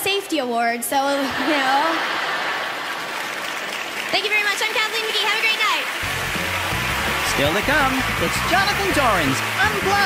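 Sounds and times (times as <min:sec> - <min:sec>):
audience laughter: 0:01.2 - 0:03.5
audience applauding: 0:01.8 - 0:10.0.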